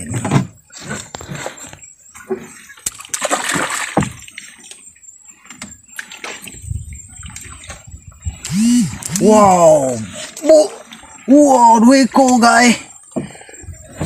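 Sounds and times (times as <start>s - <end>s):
water splashing against boat: 0.0s - 14.0s.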